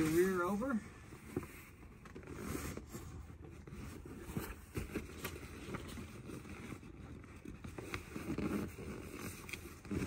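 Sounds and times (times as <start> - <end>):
fabric rustling and scraping: 0.0 - 10.0.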